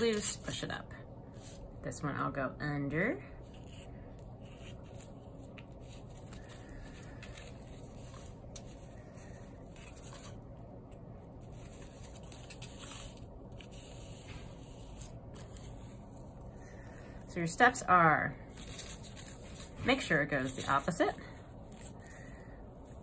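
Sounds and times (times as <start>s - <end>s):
low background hum: 0.0s - 23.0s.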